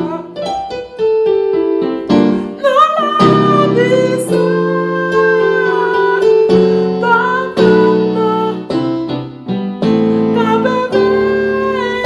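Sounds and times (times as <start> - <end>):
piano playing gospel chords: 0.0 - 12.0.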